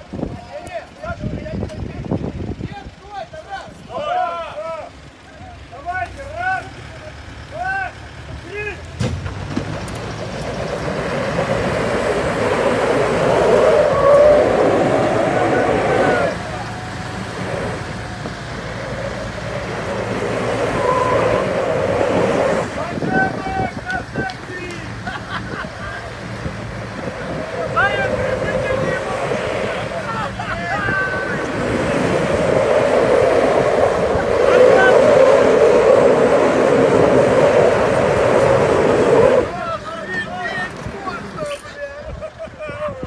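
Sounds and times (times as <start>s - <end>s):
engines revving hard: 9.0s - 41.7s
tyres spinning on gravel: 9.1s - 24.9s.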